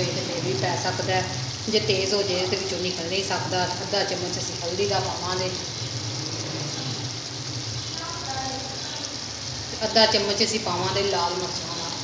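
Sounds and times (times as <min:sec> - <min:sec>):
meat sizzling in a pan: 0:00.0 - 0:12.0.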